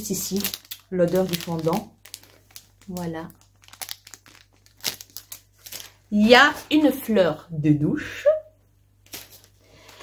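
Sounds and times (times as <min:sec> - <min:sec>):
plastic packaging crinkling: 0:00.0 - 0:07.1, 0:09.0 - 0:10.0.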